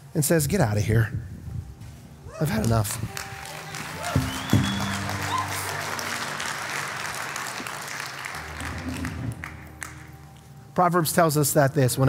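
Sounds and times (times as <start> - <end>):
low chord background music: 0.0 - 12.0
congregation applauding: 2.5 - 10.5.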